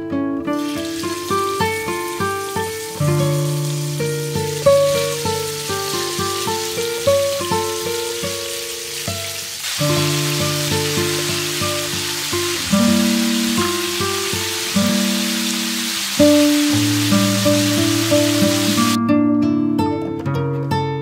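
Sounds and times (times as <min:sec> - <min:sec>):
background music melody: 0:00.0 - 0:21.0
beef sizzling in a frying pan: 0:00.6 - 0:19.0.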